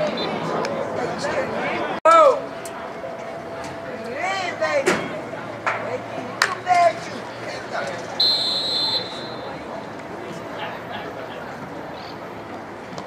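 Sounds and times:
referee's whistle: 8.2 - 9.6.

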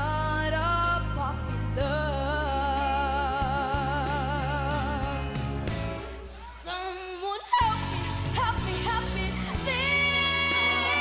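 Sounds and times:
backing track: 0.0 - 11.0.

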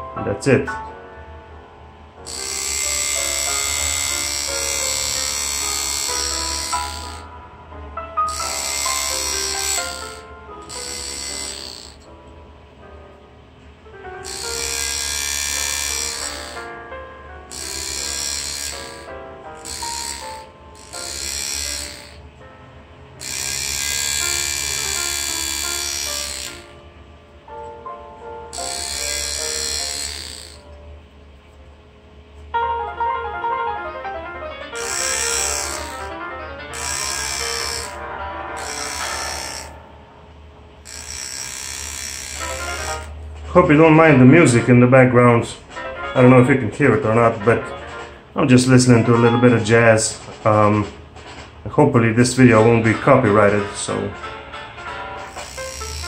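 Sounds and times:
engraving handpiece cutting metal: 2.3 - 7.3, 8.2 - 12.1, 14.2 - 16.7, 17.5 - 22.3, 23.2 - 26.8, 28.5 - 30.7, 34.8 - 39.8, 40.8 - 43.2, 55.2 - 56.0.

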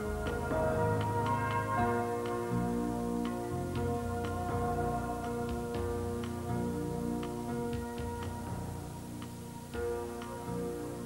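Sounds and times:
soft sustained chords: 0.0 - 11.0.

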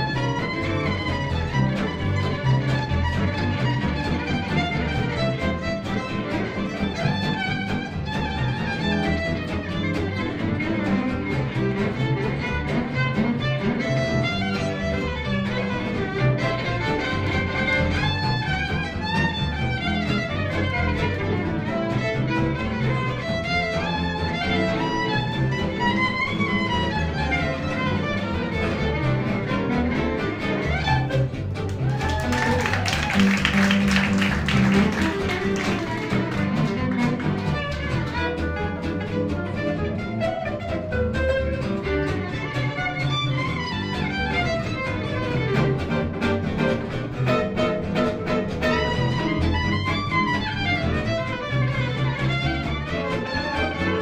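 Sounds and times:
acoustic rhythm guitars: 0.0 - 54.0
bowed violin melody: 0.0 - 54.0
upright bass: 0.0 - 54.0.

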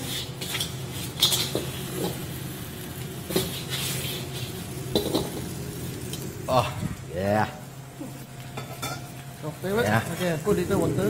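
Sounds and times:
wok and utensil clanking: 0.0 - 6.6, 8.3 - 11.0
gas burner low hum: 0.0 - 11.0.

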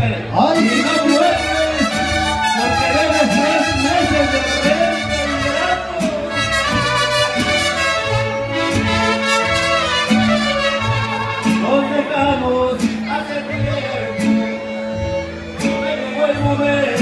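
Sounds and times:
plucked bass: 0.0 - 17.0
violins: 0.0 - 17.0
strummed guitars: 0.4 - 17.0.

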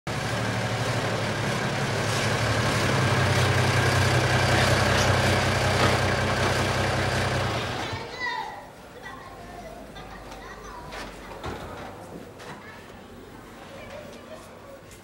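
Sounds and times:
truck engine running: 0.1 - 8.1.

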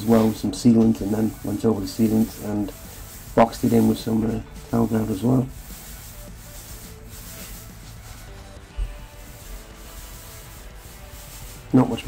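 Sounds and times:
hand tool scraping a plasterboard wall: 0.0 - 12.0
quiet music: 0.0 - 12.0.

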